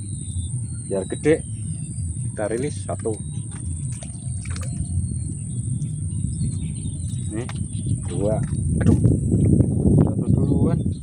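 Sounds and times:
faint bird chirps: 0.0s - 11.0s
steady low rumble: 0.0s - 11.0s.

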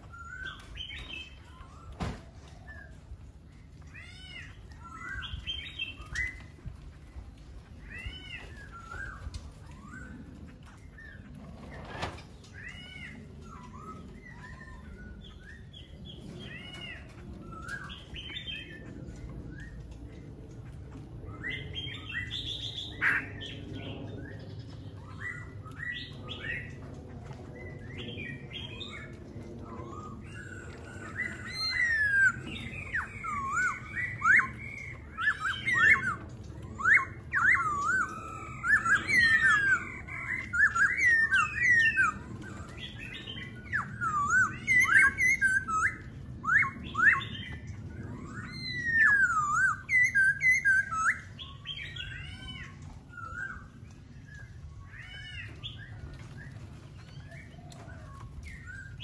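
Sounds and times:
birds whistling song: 0.0s - 59.0s.

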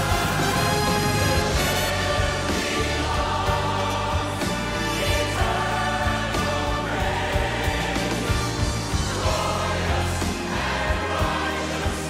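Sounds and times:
choir and orchestra worship song: 0.0s - 12.0s.

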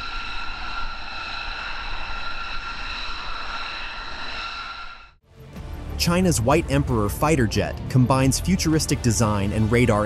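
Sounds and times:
jet engine whine: 0.0s - 5.2s.

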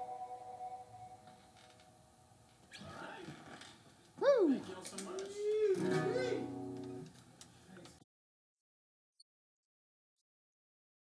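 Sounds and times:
guitar chord ringing out: 0.0s - 1.3s, 5.8s - 7.0s
held tone: 0.0s - 1.4s.

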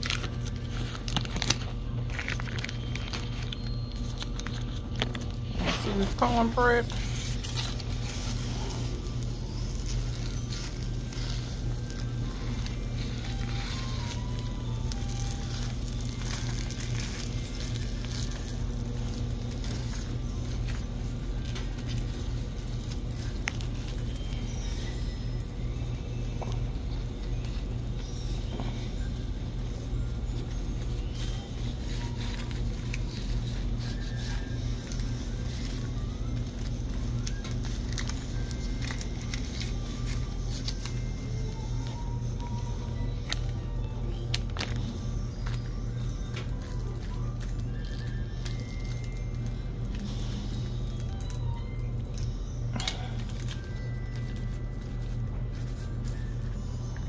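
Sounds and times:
faint background music: 0.0s - 57.0s
steady low hum: 0.0s - 57.0s.

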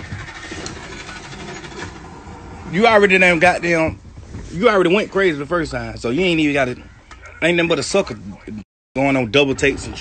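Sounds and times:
low engine-like rumble: 0.0s - 7.5s.

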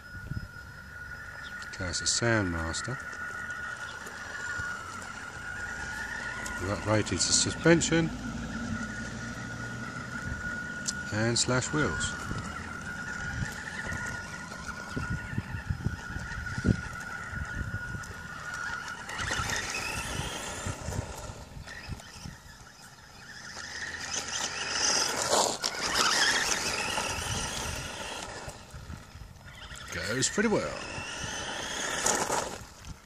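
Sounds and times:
electric motor whine: 0.0s - 33.0s
tyres rumbling on gravel: 0.0s - 33.0s.

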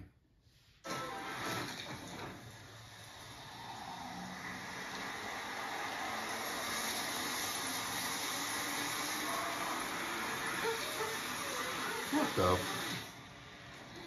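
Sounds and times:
steady rushing noise: 3.0s - 10.6s.

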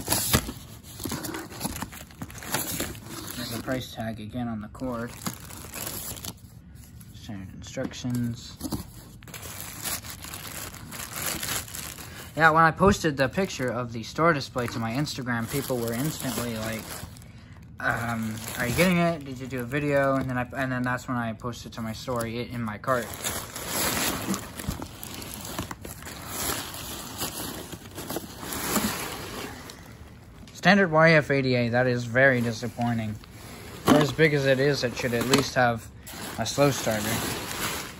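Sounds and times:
plastic wrapping crinkling: 0.0s - 3.8s, 5.0s - 6.4s, 9.1s - 12.4s, 14.4s - 17.2s, 17.9s - 20.3s, 22.1s - 30.6s, 32.0s - 37.9s.

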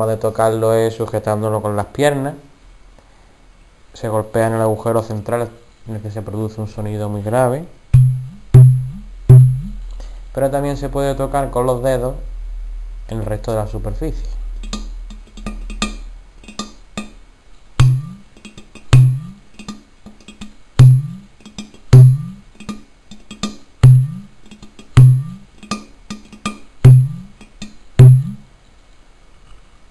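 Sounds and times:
deep bending bass drum notes: 7.9s - 16.3s, 17.8s - 18.3s, 18.9s - 19.4s, 20.8s - 21.3s, 21.9s - 22.5s, 23.8s - 24.3s, 25.0s - 25.5s, 26.8s - 27.4s, 28.0s - 28.5s
finger taps on clay drum: 18.9s - 28.4s.

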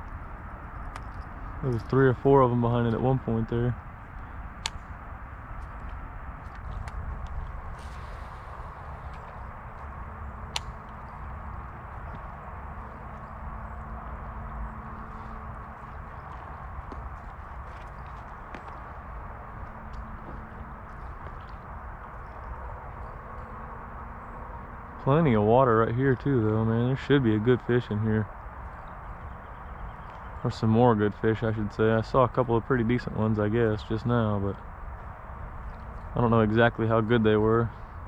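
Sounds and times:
low outdoor rumble: 0.0s - 38.0s
footsteps on rocky ground: 5.6s - 10.0s, 10.8s - 22.5s.

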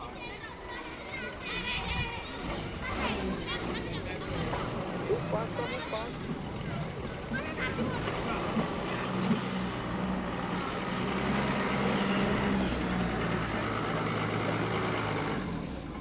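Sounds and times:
truck engine driving past: 1.6s - 16.0s.

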